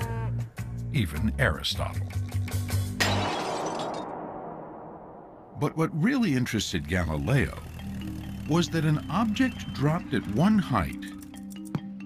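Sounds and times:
ceramic shattering: 3.0 - 4.2.

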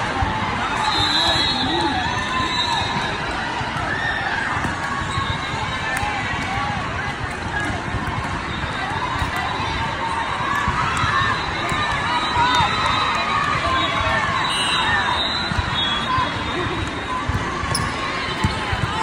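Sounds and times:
many voices talking and calling: 0.0 - 19.0
volleyballs struck and bouncing: 1.5 - 14.3, 15.4 - 19.0.

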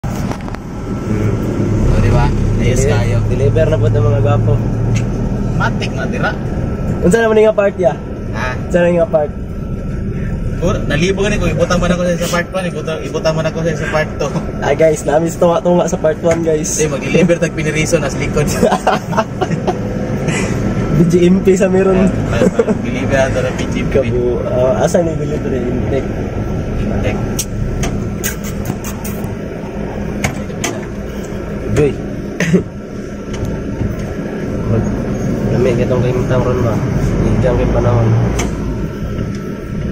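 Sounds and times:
road noise: 0.0 - 39.9
vehicle engine humming: 0.0 - 39.9.

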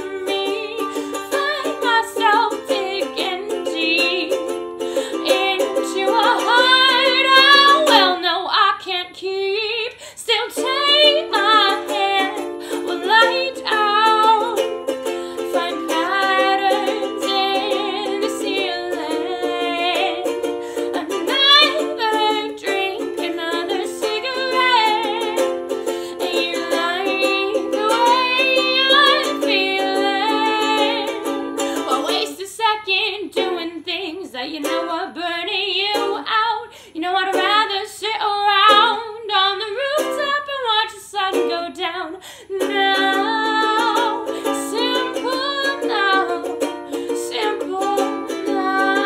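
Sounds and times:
strummed ukulele: 0.0 - 49.0
woman singing: 0.0 - 49.0.

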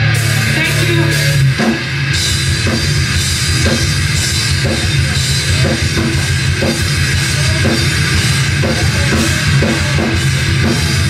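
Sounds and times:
bass guitar: 0.0 - 11.0
distorted electric guitars: 0.0 - 11.0
pounding drum kit with cymbals: 0.0 - 11.0.

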